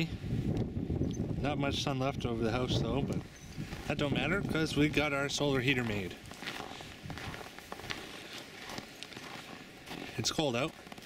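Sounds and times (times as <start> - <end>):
footsteps crunching on snow: 2.5 - 11.0.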